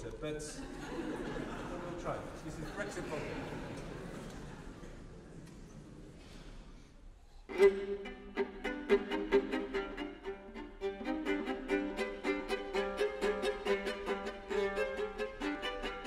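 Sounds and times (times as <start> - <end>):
viola playing quick tune: 7.5 - 16.0.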